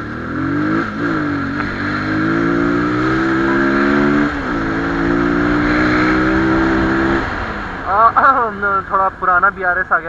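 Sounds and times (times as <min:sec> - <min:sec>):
motorcycle engine running: 0:00.0 - 0:09.5.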